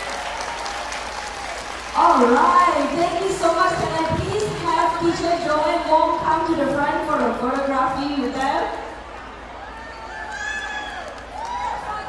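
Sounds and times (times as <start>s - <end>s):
person talking: 2.0s - 8.7s.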